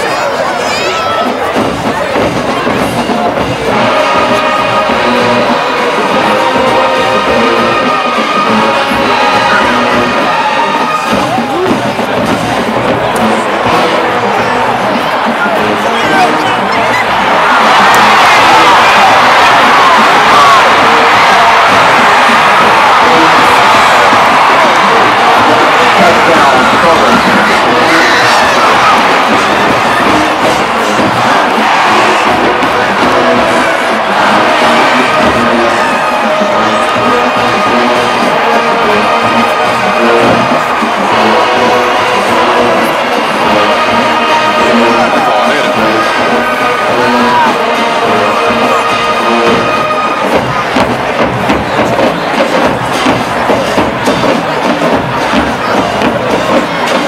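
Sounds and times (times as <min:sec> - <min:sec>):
marching band brass playing: 0:00.0 - 0:57.0
stadium crowd cheering: 0:00.0 - 0:57.0.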